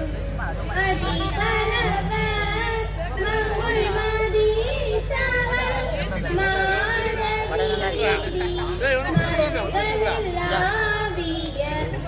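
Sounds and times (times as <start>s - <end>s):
steady low hum: 0.0s - 12.0s
girl singing into a microphone: 0.7s - 12.0s.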